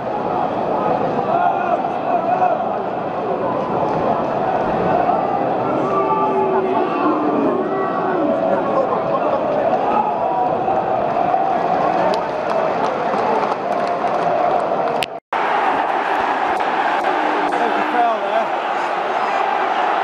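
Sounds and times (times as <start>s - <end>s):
general crowd noise: 0.0s - 20.0s
crowd singing a chant: 15.4s - 20.0s.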